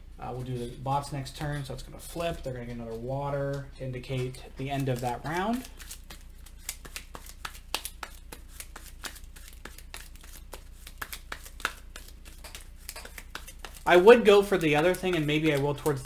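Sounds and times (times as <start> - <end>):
cards and tiles clicking on table: 4.8 - 16.0.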